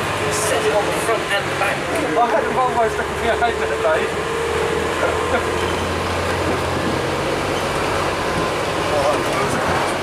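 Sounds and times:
bus engine droning: 0:00.0 - 0:10.0
road noise: 0:00.0 - 0:10.0.

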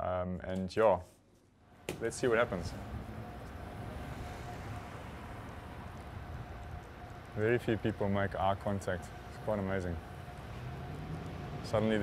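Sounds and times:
faint steady hum: 0:01.6 - 0:12.0
road traffic: 0:01.6 - 0:12.0.

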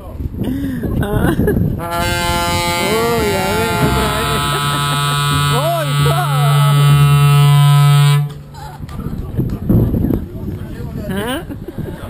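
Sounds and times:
trumpet long low note: 0:01.8 - 0:08.4.

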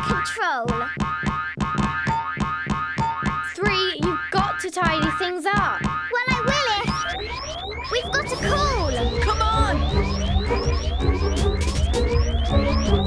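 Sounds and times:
cartoon boing sound effects: 0:00.0 - 0:07.4
background music with steady beat: 0:00.7 - 0:13.0.

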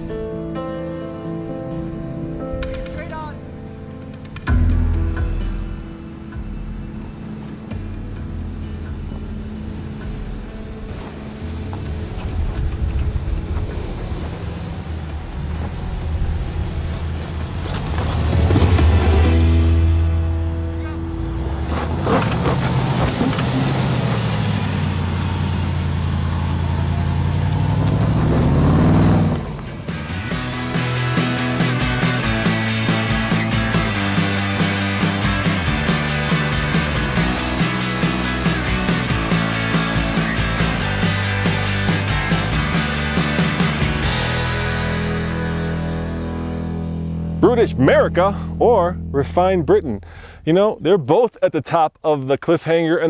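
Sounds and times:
engine pulling under load: 0:09.1 - 0:19.6, 0:21.0 - 0:32.0.

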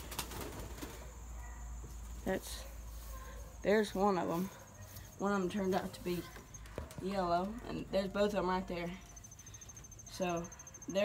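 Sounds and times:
wings fluttering: 0:00.0 - 0:01.2.

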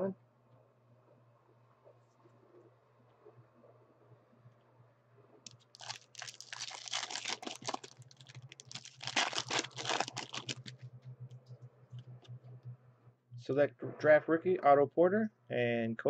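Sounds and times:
low steady hum: 0:00.0 - 0:16.0
foil wrapper crinkling: 0:05.5 - 0:10.8.

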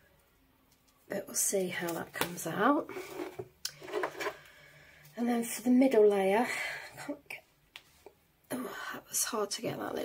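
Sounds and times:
faint rubbing and rustling: 0:02.8 - 0:04.4.

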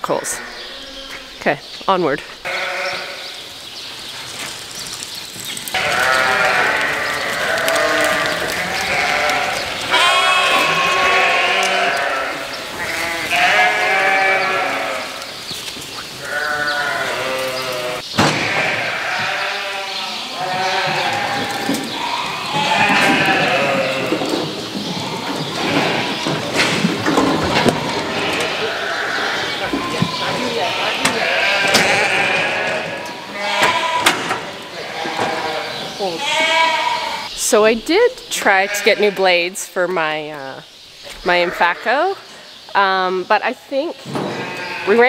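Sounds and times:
sheep and lambs bleating: 0:00.0 - 0:01.4, 0:02.4 - 0:03.4, 0:05.7 - 0:15.3, 0:16.2 - 0:26.5, 0:27.6 - 0:37.3, 0:38.3 - 0:39.4, 0:41.2 - 0:42.3, 0:44.3 - 0:45.0.

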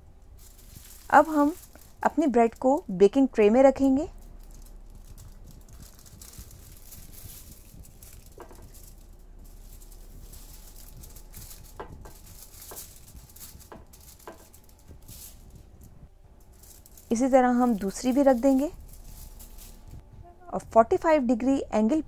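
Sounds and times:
aluminium foil rustling: 0:00.0 - 0:20.0.

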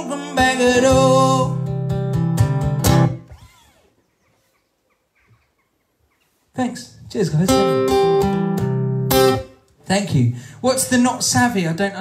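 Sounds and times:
acoustic guitar chord ringing: 0:07.5 - 0:09.6.

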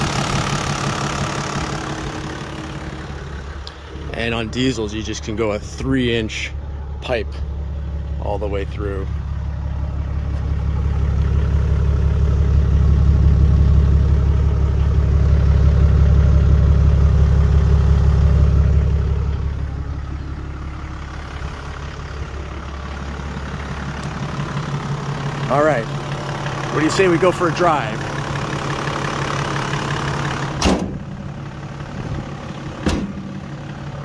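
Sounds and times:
diesel engine idling: 0:00.0 - 0:34.0.

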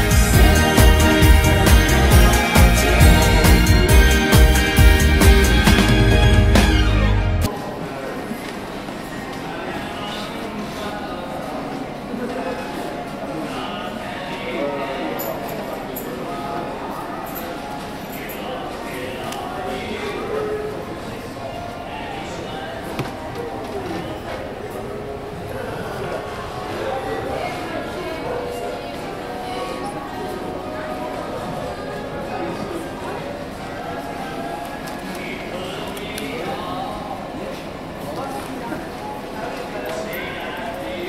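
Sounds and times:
indistinct shopper voices: 0:00.0 - 0:04.3, 0:07.4 - 0:41.0.

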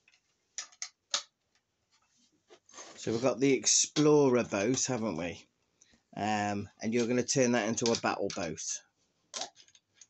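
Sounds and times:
plastic building bricks clicking: 0:00.0 - 0:01.4, 0:07.0 - 0:08.6, 0:09.3 - 0:10.0.

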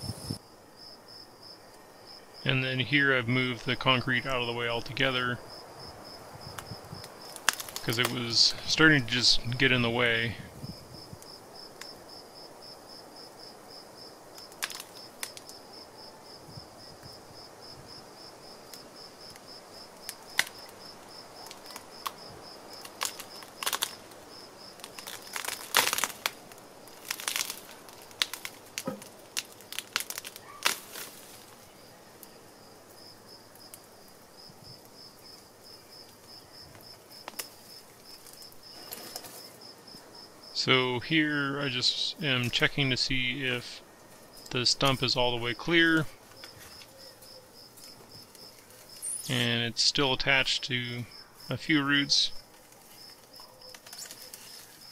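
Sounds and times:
insects chirping: 0:00.0 - 0:03.6, 0:04.2 - 0:54.9
tree roots cracking and snapping: 0:06.5 - 0:08.3, 0:14.3 - 0:15.6, 0:18.7 - 0:31.7, 0:36.0 - 0:39.5, 0:52.4 - 0:54.9.

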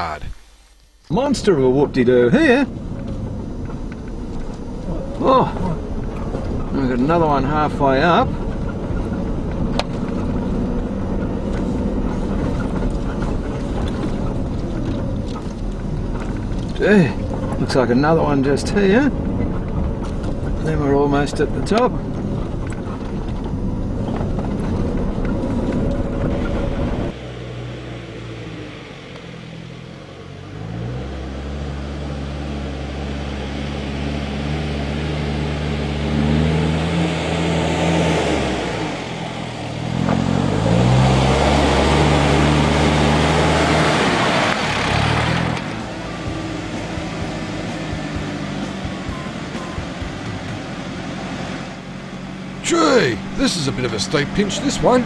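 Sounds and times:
steady engine rumble: 0:00.0 - 0:55.0
four-wheel-drive engines revving: 0:01.2 - 0:55.0
tyres crunching on dirt and stones: 0:02.7 - 0:27.2.

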